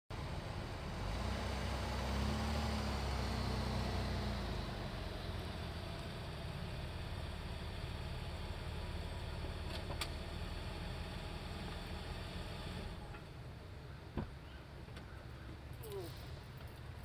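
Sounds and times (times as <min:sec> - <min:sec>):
car engine rumble: 0:00.1 - 0:17.0.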